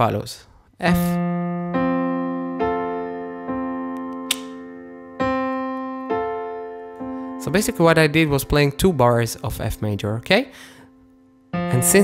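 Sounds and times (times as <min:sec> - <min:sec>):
piano chords: 0:00.8 - 0:12.0.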